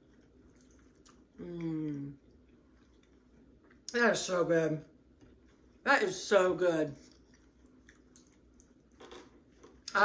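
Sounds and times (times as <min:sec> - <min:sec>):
faint chewing: 0:00.0 - 0:04.0, 0:07.0 - 0:10.0.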